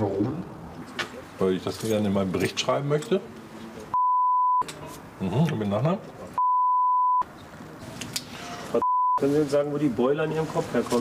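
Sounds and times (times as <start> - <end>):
censor bleep: 3.9 - 4.7, 6.4 - 7.3, 8.8 - 9.2.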